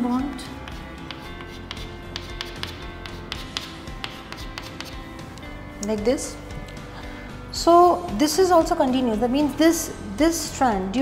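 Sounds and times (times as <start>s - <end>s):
chalk tapping on chalkboard: 0.3s - 5.0s.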